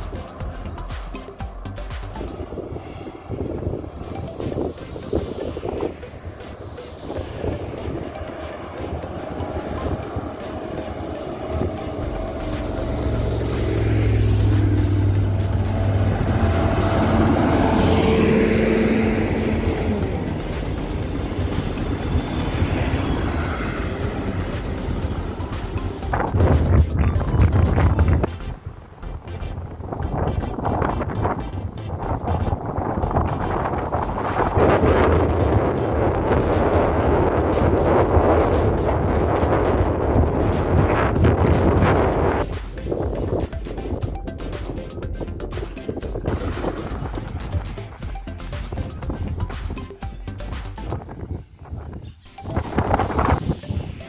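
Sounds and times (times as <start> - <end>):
car passing: 0.0 - 43.4, 45.9 - 48.1
bus engine: 0.0 - 51.0
motorcycle engine: 7.3 - 42.7.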